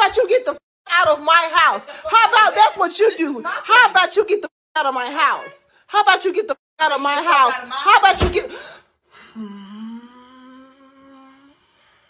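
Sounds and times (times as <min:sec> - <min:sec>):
person humming long note: 0:09.4 - 0:11.8.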